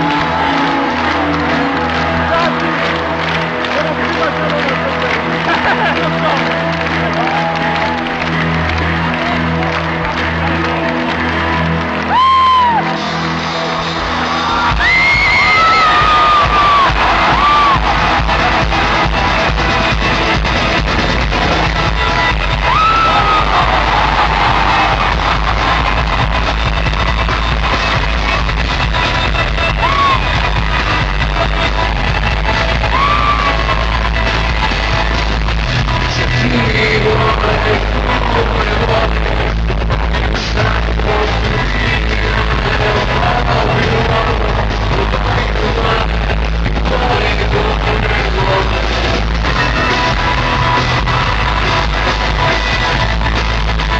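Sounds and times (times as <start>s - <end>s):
crowd cheering: 0.0s - 53.9s
live rock music: 0.0s - 53.9s
whoops and yells: 12.1s - 13.0s, 14.4s - 18.0s, 29.8s - 30.4s, 32.8s - 33.8s.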